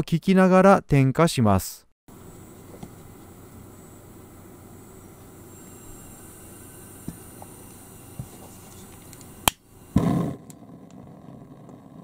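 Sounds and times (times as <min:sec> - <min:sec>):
gas hissing from burner nozzle: 0:02.1 - 0:10.6.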